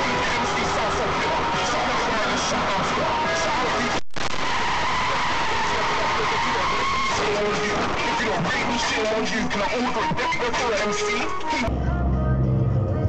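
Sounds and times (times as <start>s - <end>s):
person talking: 0.0s - 4.0s, 5.8s - 11.7s.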